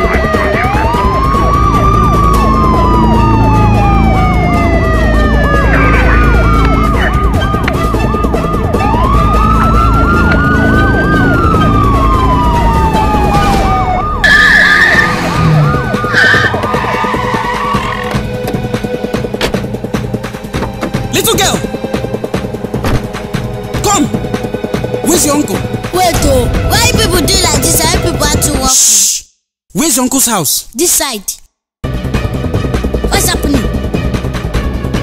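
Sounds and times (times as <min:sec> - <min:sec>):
fast warbling siren: 0:00.0 - 0:18.2
police siren slow wail: 0:00.0 - 0:18.2.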